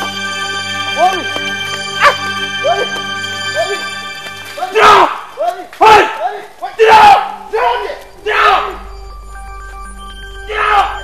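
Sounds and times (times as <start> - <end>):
electronic background music: 0.0 - 5.4, 6.2 - 11.0.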